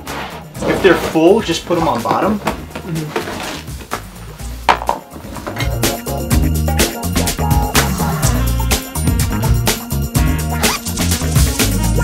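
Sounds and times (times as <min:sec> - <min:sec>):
rhythmic background music: 0:00.0 - 0:12.0
hard items knocking in plastic bin: 0:04.7 - 0:05.1.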